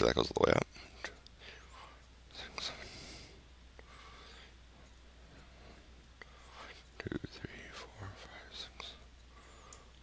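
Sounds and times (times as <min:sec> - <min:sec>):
man whispering: 0:00.0 - 0:03.3, 0:06.2 - 0:09.8
soft clicks: 0:08.8 - 0:10.0.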